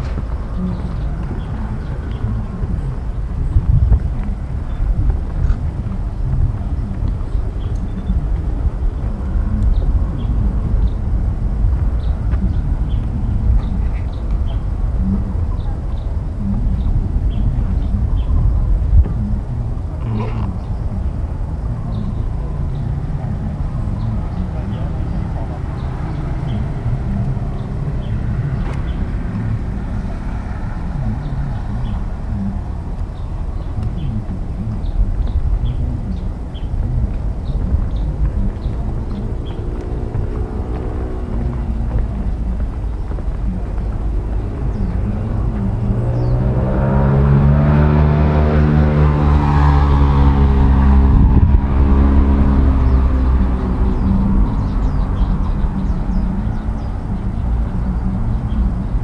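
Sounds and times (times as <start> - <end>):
distant voices: 0.0 - 59.0
low rumble on microphone: 0.0 - 59.0.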